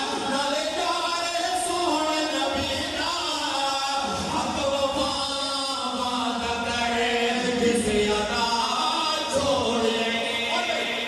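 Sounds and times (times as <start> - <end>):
men singing into microphones: 0.0 - 11.0.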